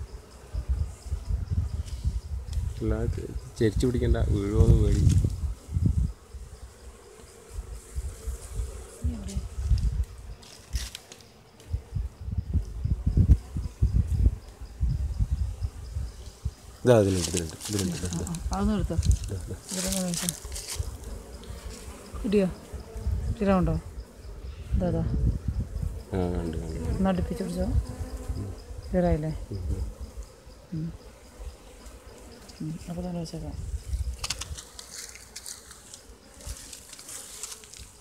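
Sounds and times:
honey bees buzzing: 0.0s - 38.0s.

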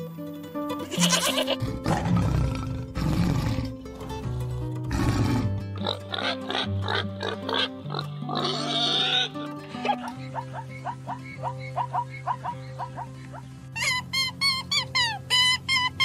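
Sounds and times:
light background music: 0.0s - 16.0s
pig grunting: 1.6s - 3.8s, 4.9s - 10.2s.

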